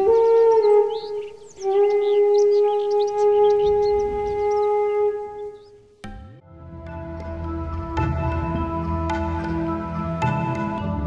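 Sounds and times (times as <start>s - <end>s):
bamboo flute music: 0.0s - 11.0s.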